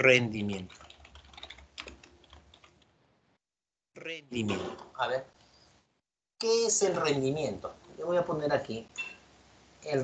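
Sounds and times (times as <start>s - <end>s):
computer keyboard typing: 0.4s - 2.9s.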